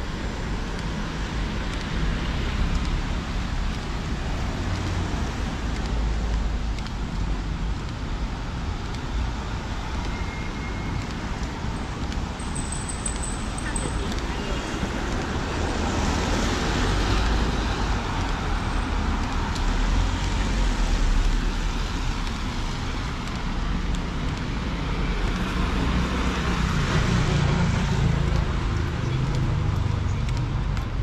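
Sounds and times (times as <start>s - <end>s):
cars passing: 0.0s - 31.0s
road traffic rumble: 0.0s - 31.0s.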